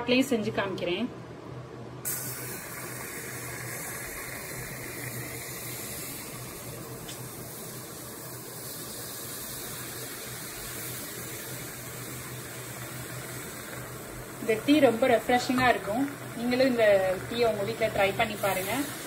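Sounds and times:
tea sizzling in hot clay cup: 0:02.1 - 0:19.0.

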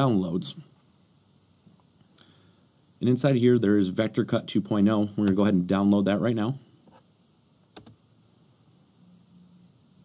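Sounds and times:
computer mouse click: 0:07.7 - 0:08.0.

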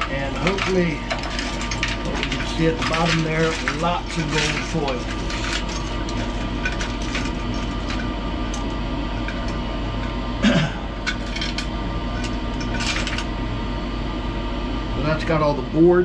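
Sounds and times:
circuit boards clattering: 0:00.0 - 0:09.6
steady low hum: 0:00.0 - 0:16.0.

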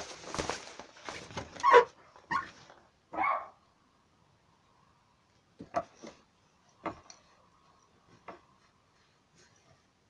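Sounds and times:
rustling and crackling: 0:00.0 - 0:02.9
dog barking: 0:03.1 - 0:03.6.

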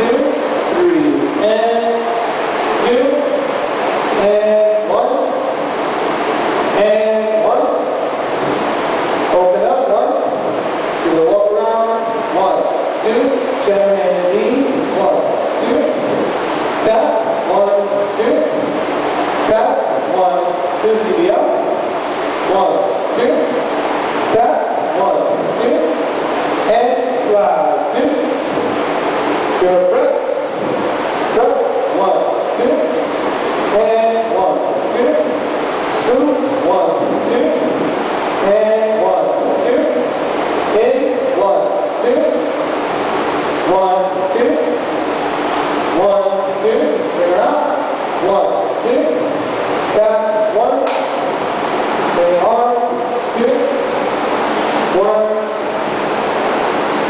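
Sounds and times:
echoing voices: 0:00.0 - 0:57.0.

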